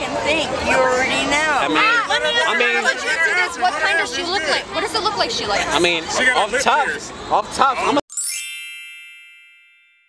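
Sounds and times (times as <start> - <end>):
bright chime: 8.1 - 10.0.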